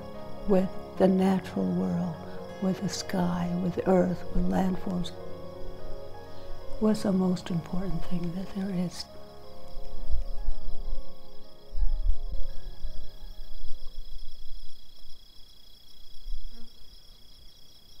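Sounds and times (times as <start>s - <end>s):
slow music with held notes: 0.0s - 15.1s
crickets chirring: 0.0s - 18.0s.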